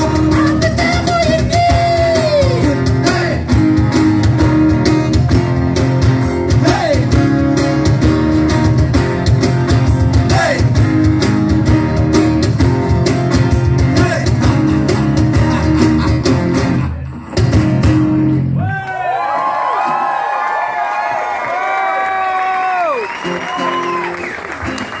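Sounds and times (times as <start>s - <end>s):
strummed acoustic guitars: 0.0s - 18.6s.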